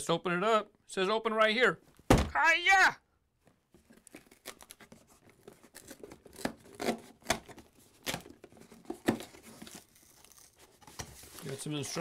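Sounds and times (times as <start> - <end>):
cardboard box tearing: 4.2 - 12.0.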